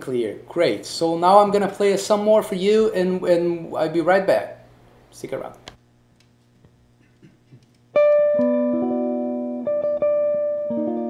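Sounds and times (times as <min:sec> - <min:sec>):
guitar chord ringing: 0:08.0 - 0:11.0.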